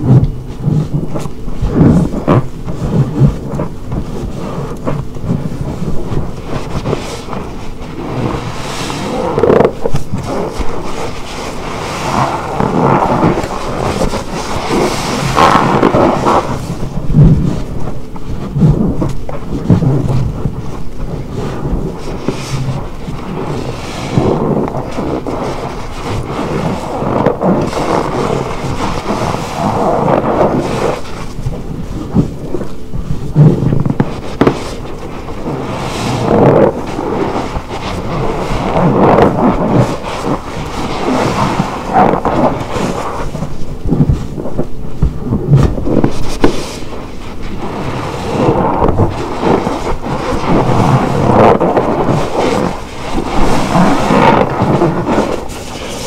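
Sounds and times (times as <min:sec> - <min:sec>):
sponge squelching in soapy water: 0:00.0 - 0:56.0.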